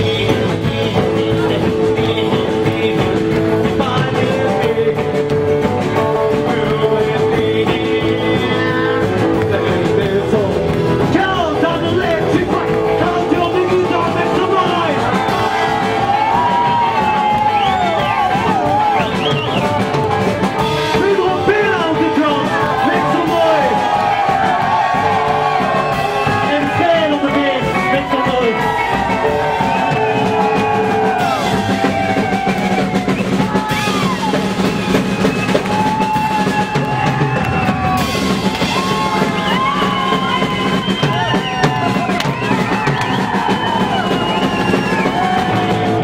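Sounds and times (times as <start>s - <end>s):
upright double bass: 0.0s - 36.0s
drum kit: 0.0s - 46.0s
electric guitar lead: 0.0s - 46.0s.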